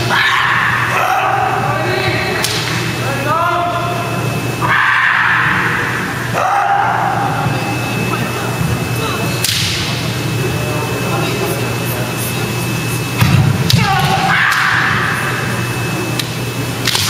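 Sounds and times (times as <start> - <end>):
people shouting: 0.0 - 2.4, 4.6 - 7.5, 13.6 - 15.7
low hum of hall: 0.0 - 17.0.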